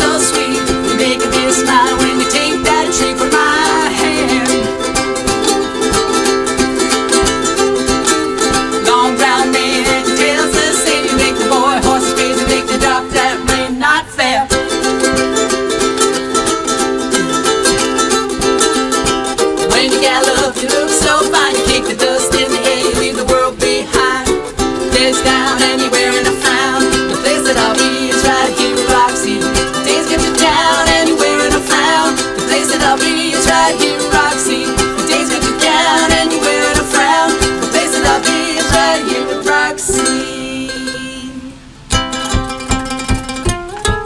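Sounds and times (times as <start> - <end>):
person singing: 0.0 - 42.7
ukuleles strumming: 0.0 - 44.0.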